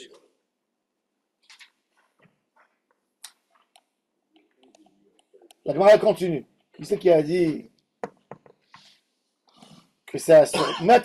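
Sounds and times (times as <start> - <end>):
person speaking: 4.4 - 8.9.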